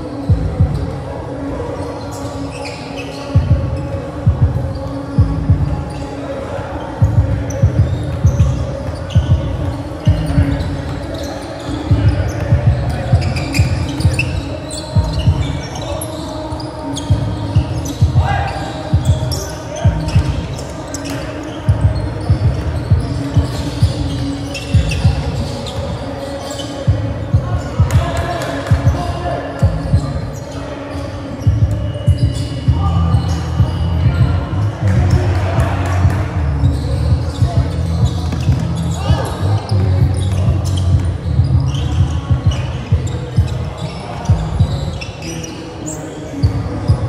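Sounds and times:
players' voices: 0:00.0 - 0:47.0
basketball bouncing on gym floor: 0:35.0 - 0:39.3.

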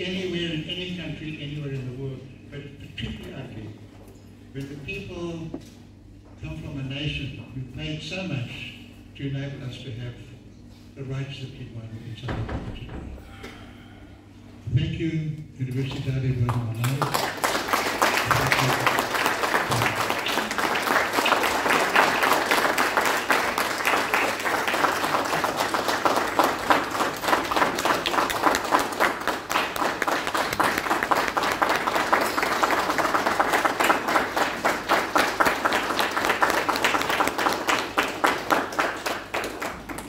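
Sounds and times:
audience applauding: 0:16.8 - 0:40.0.

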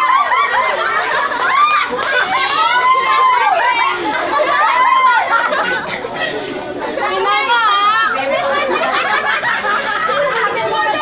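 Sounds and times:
children talking and shouting: 0:00.0 - 0:11.0.

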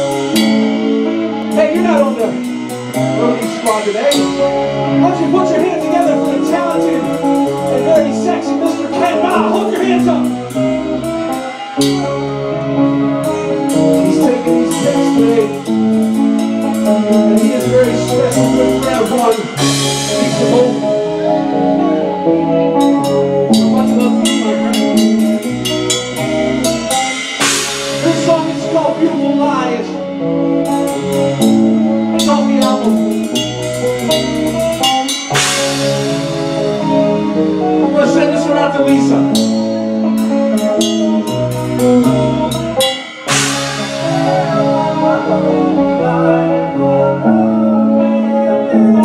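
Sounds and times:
drum kit cymbals and drums: 0:00.0 - 0:12.5, 0:13.2 - 0:21.2, 0:22.8 - 0:29.8, 0:30.6 - 0:45.0
held instrument notes: 0:00.0 - 0:49.0
rock band playing: 0:00.0 - 0:49.0
crash cymbal hit: 0:42.9 - 0:44.4.

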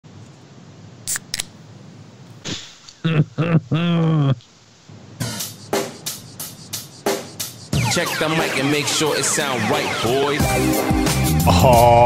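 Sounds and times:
faint steady hum: 0:00.0 - 0:10.4.

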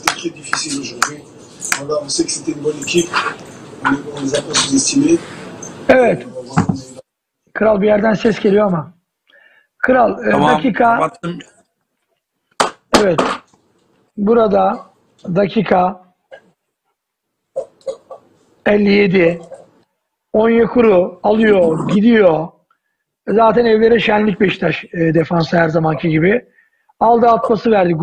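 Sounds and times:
voices: 0:00.0 - 0:07.1, 0:10.1 - 0:11.6
man speaking a word: 0:10.2 - 0:11.4.

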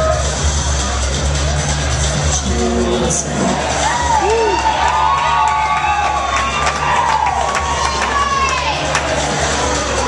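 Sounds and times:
background music with steady bass: 0:00.0 - 0:10.0
audience cheering and whooping: 0:03.1 - 0:10.0.

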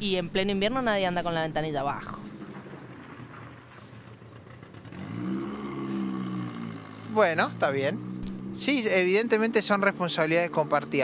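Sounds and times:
outdoor background noise: 0:00.0 - 0:11.0
passing vehicle engine: 0:02.1 - 0:11.0.

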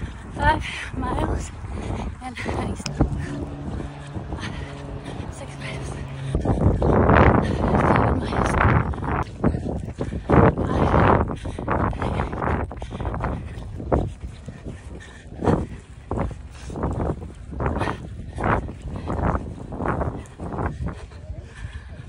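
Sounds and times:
woman breathing heavily: 0:00.0 - 0:22.0.

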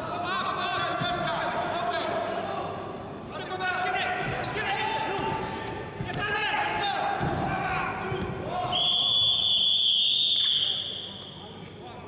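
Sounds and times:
referee's whistle blast: 0:08.7 - 0:11.4.

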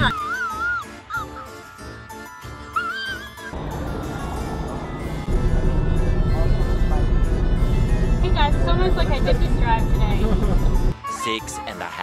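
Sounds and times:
music: 0:00.0 - 0:12.0
car road noise: 0:03.6 - 0:10.9.

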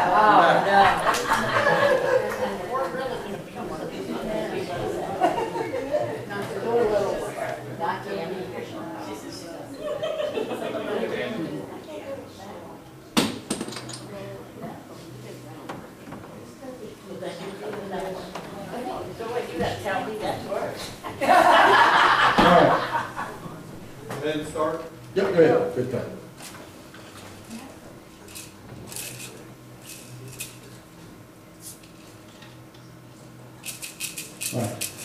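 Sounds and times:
low room hum: 0:00.0 - 0:35.0.

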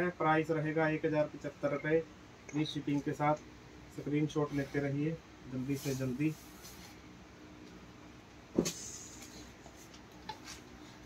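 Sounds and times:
room hiss with low hum: 0:00.0 - 0:11.0.

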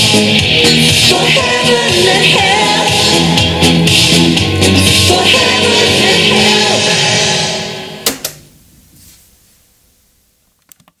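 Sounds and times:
music from boombox speakers: 0:00.0 - 0:08.1.

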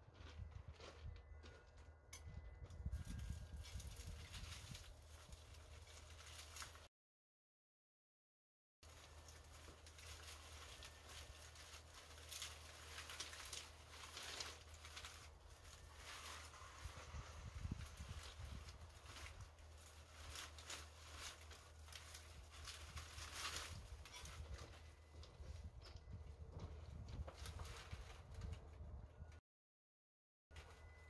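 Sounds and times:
plant leaves rustling and crackling: 0:03.0 - 0:06.9, 0:08.8 - 0:25.8, 0:26.6 - 0:28.8
plant being pulled apart crackling: 0:09.2 - 0:17.3.

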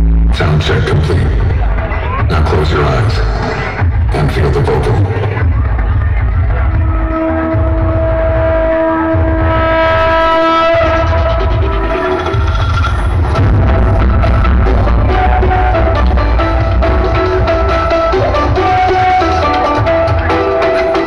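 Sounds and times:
loud music with heavy bass: 0:00.0 - 0:21.0
pulsing bass beat: 0:00.0 - 0:21.0.

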